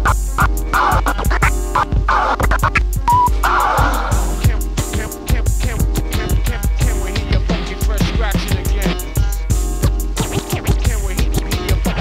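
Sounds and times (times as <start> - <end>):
deep bass: 0.0 - 12.0
drum beat: 0.0 - 12.0
turntable scratching: 0.0 - 12.0.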